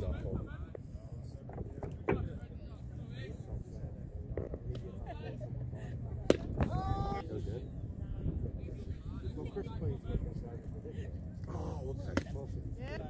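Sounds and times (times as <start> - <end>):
spectators chatting: 0.0 - 13.0.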